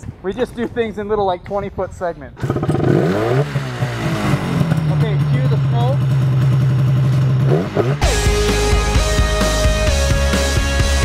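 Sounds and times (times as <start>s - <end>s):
snowmobile engine running and revving: 2.4s - 9.0s.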